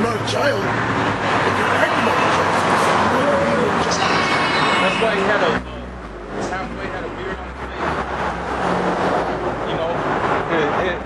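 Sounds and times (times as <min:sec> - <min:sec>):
traffic engine rumble: 0:00.0 - 0:11.0
faint voices: 0:01.4 - 0:08.3.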